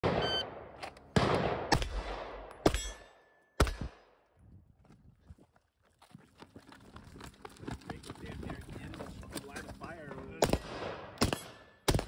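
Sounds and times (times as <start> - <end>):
echoing gunshots: 0.0 - 4.2, 10.4 - 12.0
shot timer beep: 0.1 - 0.5.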